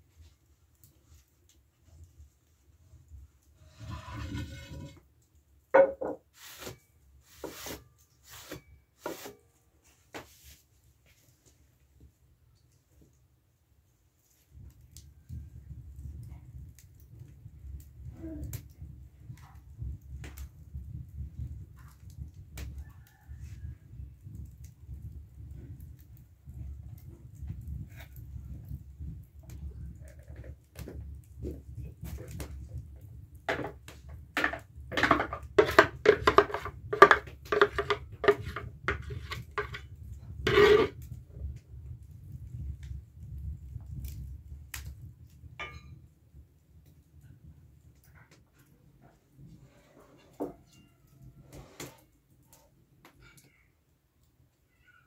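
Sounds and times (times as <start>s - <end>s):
wood fire crackling: 0.0s - 54.8s
spoon scraping and tapping bowl: 34.4s - 39.8s, 40.5s - 40.9s.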